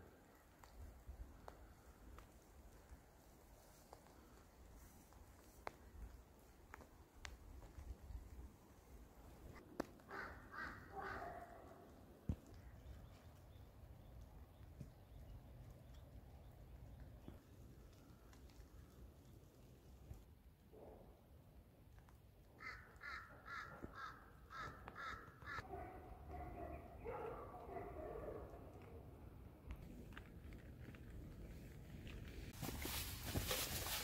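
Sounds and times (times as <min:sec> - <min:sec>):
crow cawing: 0:10.1 - 0:11.3, 0:22.6 - 0:25.6.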